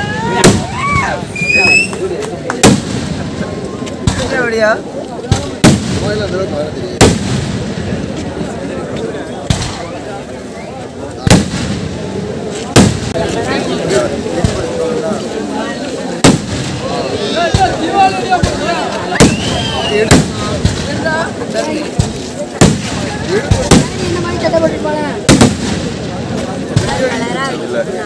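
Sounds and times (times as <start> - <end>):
firework bangs: 0.3 - 4.5, 5.3 - 8.2, 9.4 - 10.1, 11.2 - 13.4, 16.2 - 21.3, 21.9 - 27.2
loud firework bang: 25.3 - 26.2.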